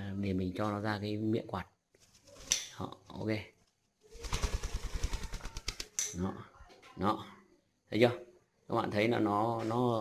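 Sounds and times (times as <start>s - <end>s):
bird wings flapping: 4.1s - 6.1s.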